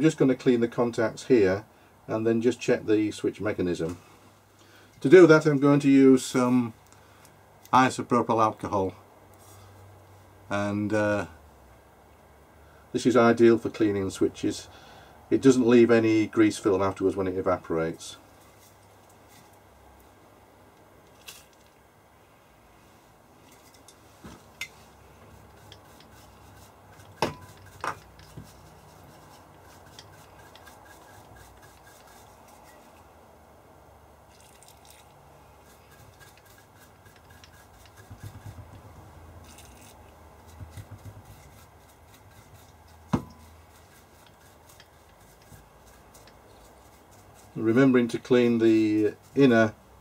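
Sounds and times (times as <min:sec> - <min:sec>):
rubbing and scraping: 0:23.4 - 0:33.1, 0:34.4 - 0:49.8
sharp knocks and clicks: 0:37.4 - 0:39.1, 0:40.5 - 0:41.4.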